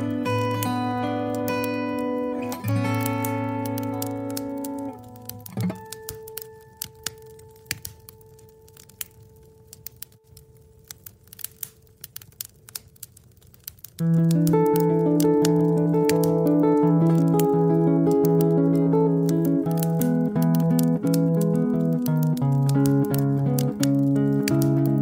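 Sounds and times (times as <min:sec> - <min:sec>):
acoustic guitar chords: 0:00.0 - 0:06.8, 0:14.0 - 0:25.0
wood fire crackling and popping: 0:00.0 - 0:25.0.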